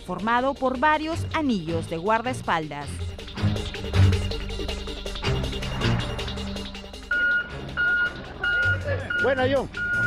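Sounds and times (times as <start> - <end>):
reversing alarm beeps: 7.1 - 10.0.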